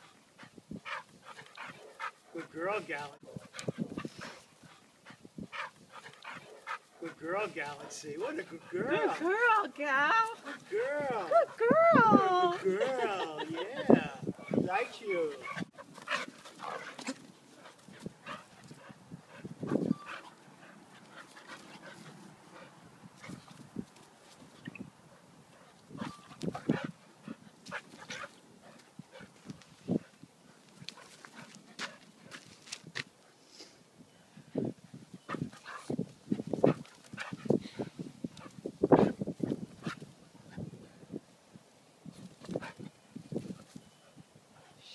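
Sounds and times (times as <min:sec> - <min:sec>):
dogs wrestling: 0:00.0 - 0:02.6, 0:03.2 - 0:33.0, 0:35.2 - 0:40.8, 0:42.2 - 0:44.8.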